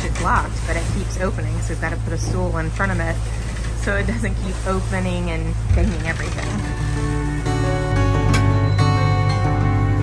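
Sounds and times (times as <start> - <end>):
people talking: 0.0 - 6.7
boat engine drone: 0.0 - 10.0.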